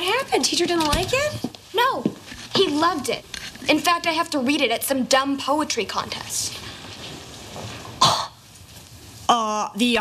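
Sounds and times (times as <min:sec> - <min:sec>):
faint room hiss: 0:00.0 - 0:10.0
person coughing: 0:08.0 - 0:08.4.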